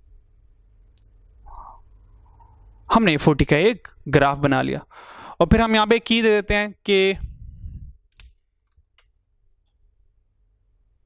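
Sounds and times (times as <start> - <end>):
person speaking: 2.9 - 8.0
low rumble: 7.2 - 8.0.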